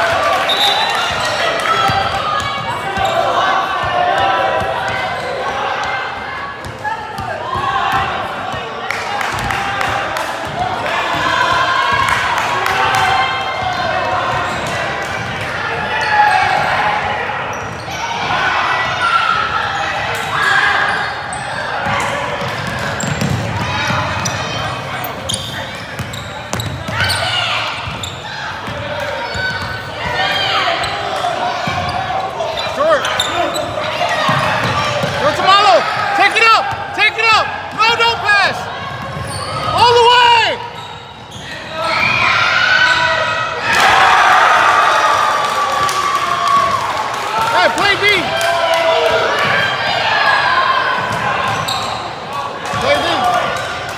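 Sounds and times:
crowd chattering and shouting: 0.0 - 53.9
sneakers squeaking: 0.4 - 8.6, 12.9 - 35.5, 37.7 - 43.9, 51.0 - 53.9
basketball bouncing on wooden floor: 22.4 - 24.3.

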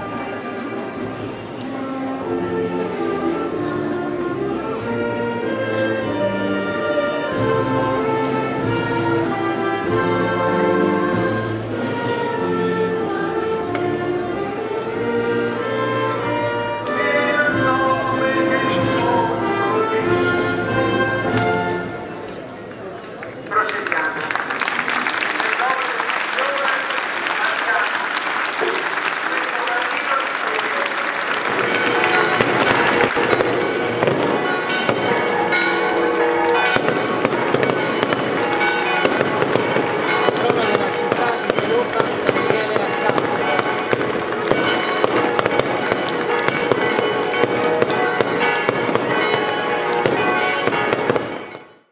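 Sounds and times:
voices: 0.0 - 1.9, 22.1 - 33.1
firecrackers crackling: 23.1 - 51.6
bells ringing: 24.8 - 51.9.

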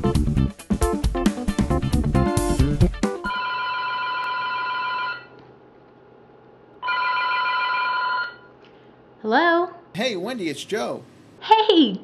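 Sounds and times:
telephone ringing: 3.3 - 5.4, 6.8 - 8.5.

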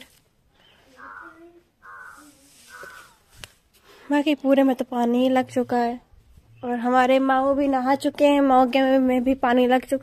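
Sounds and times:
crow cawing: 1.0 - 3.2.

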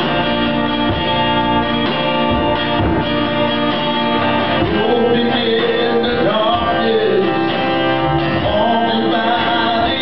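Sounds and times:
acoustic guitar strumming: 0.0 - 10.0
man singing into a microphone: 4.6 - 10.0.

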